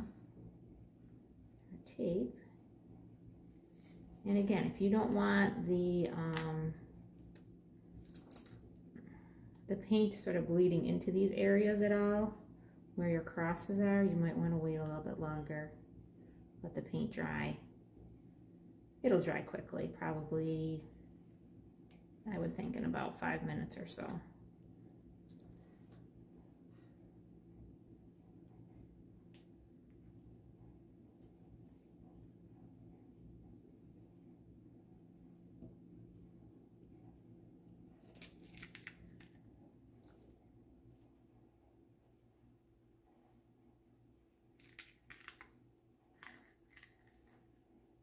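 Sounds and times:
low room hum: 0.0 - 48.0
faint clicks of tape peeling: 38.0 - 39.4.

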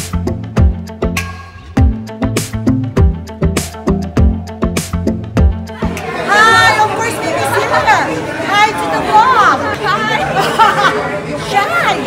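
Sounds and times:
people chatting in echoing hall: 5.6 - 12.0.

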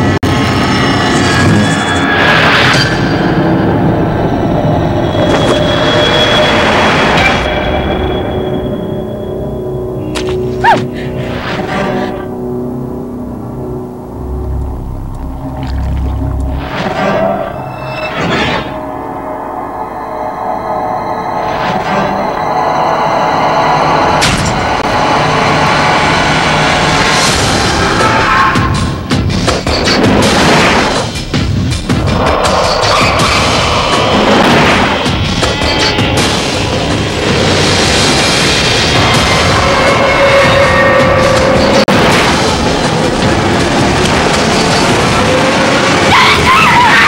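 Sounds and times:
dense droning sound design: 0.0 - 46.2
dense rumbling sound design: 6.5 - 29.4
low steady hum: 9.0 - 17.7.

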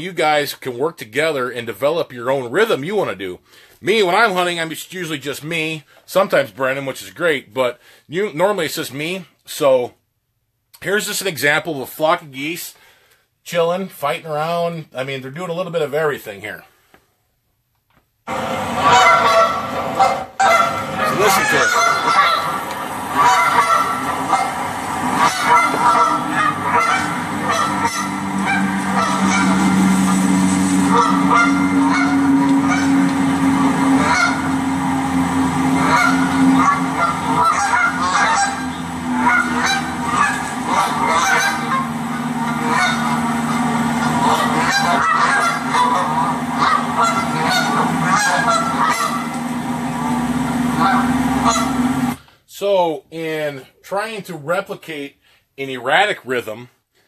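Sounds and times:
geese honking and clucking: 18.3 - 52.2.

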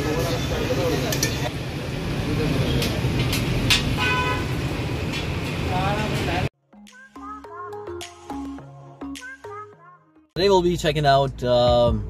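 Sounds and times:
traffic noise: 0.0 - 6.5
cooking utensils clacking: 1.0 - 1.5
vehicle horn tooting: 4.0 - 4.6.

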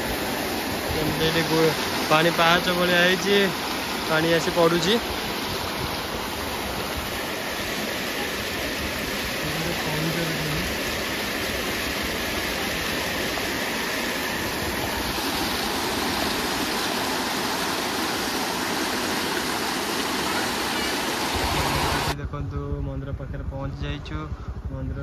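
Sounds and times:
river water rushing: 0.0 - 22.2.

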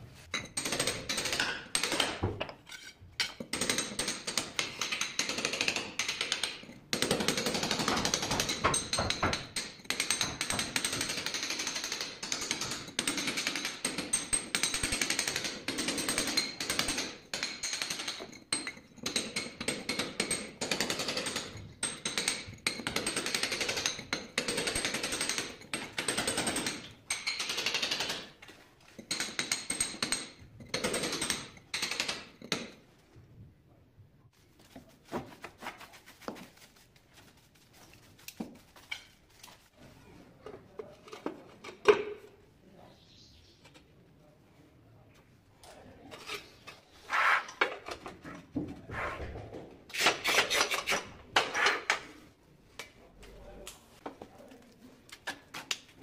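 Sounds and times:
chisel striking tile: 0.4 - 32.8, 49.9 - 52.2.

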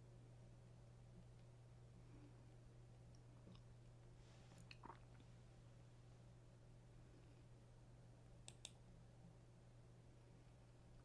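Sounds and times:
steady low hum: 0.0 - 11.0
faint clicks: 8.4 - 8.8.

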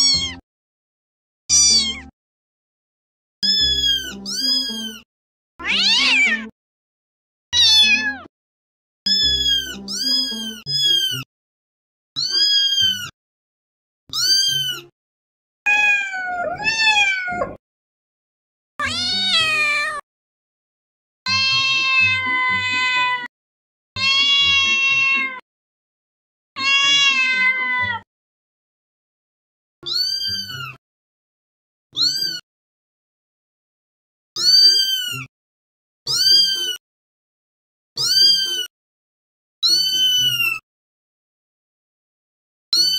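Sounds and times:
cats meowing: 1.5 - 2.1, 3.4 - 5.0, 5.6 - 6.5, 7.6 - 8.3, 9.1 - 11.2, 12.2 - 13.1, 14.1 - 14.9, 15.7 - 17.6, 18.8 - 20.0, 21.3 - 23.3, 24.0 - 25.4, 26.6 - 28.0, 29.9 - 30.8, 32.0 - 32.4, 34.4 - 35.3, 36.1 - 36.8, 38.0 - 38.7, 39.7 - 40.6.

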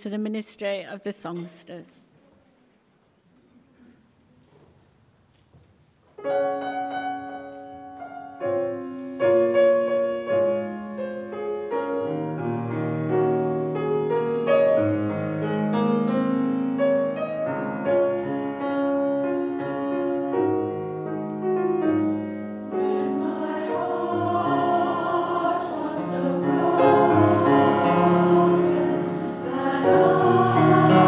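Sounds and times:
piano chords and melody: 6.2 - 31.0.

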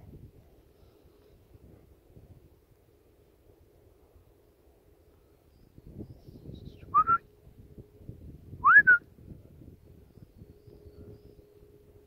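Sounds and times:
person whistling rising whistles: 6.9 - 7.2, 8.6 - 9.0.

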